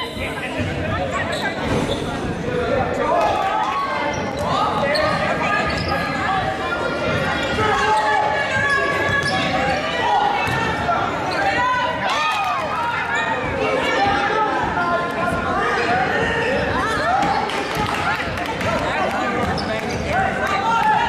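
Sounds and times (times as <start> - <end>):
voices calling out in a hall: 0.0 - 21.0.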